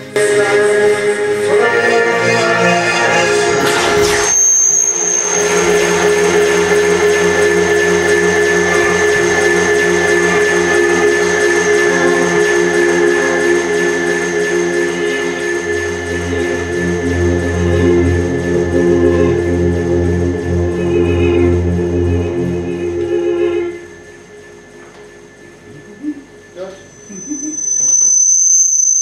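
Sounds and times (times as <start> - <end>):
electric guitars and synthesizers chord: 0.0 - 27.4
deep bass note: 0.2 - 27.1.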